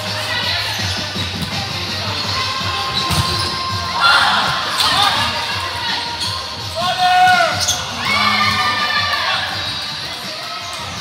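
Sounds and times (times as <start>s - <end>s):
shoes squeaking on gym floor: 0.8s - 8.4s.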